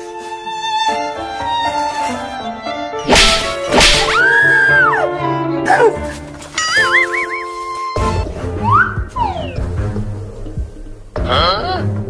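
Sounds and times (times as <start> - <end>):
background music: 0.0 - 12.0
whip-crack swishes: 3.0 - 4.2.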